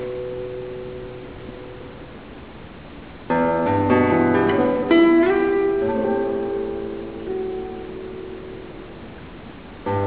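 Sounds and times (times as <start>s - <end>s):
classical guitar chord ringing: 0.0s - 10.0s
faint hall hiss: 0.0s - 10.0s.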